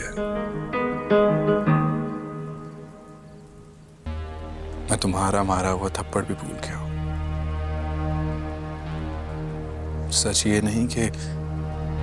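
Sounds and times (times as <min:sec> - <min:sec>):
sustained orchestral chords: 0:00.0 - 0:12.0
deep bass note: 0:04.1 - 0:10.1.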